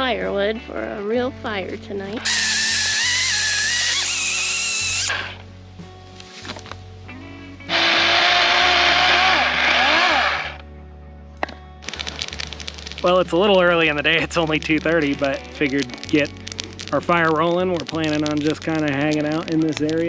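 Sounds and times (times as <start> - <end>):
electric chainsaw cutting log: 2.2 - 5.4, 7.7 - 10.6.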